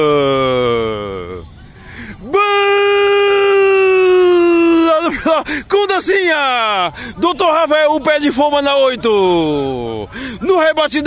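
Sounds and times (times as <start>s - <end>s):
man shouting: 2.2s - 6.8s.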